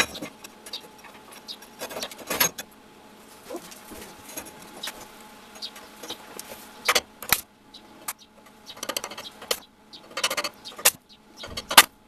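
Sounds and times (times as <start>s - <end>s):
hand tools scraping and tapping: 3.5s - 7.4s, 8.7s - 11.9s.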